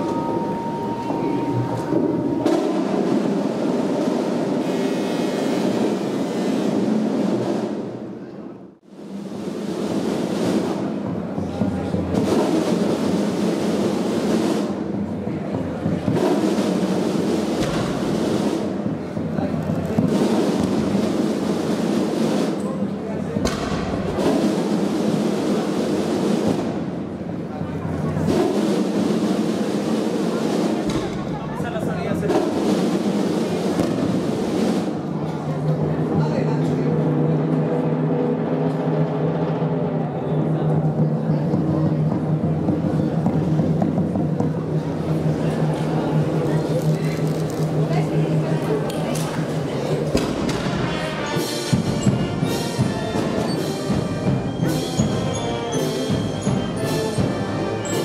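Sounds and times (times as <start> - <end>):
processional band music: 0.0 - 7.7, 50.0 - 58.0
crowd voices: 0.0 - 58.0.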